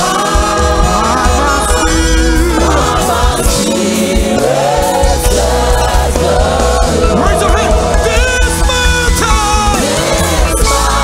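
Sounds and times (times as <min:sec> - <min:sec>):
deep bass: 0:00.0 - 0:11.0
gospel choir singing: 0:00.0 - 0:11.0.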